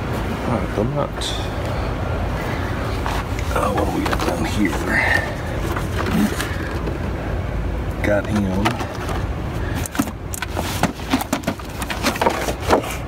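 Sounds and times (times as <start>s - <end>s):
low rumble of room noise: 0.0s - 13.0s
background voices: 0.4s - 7.1s.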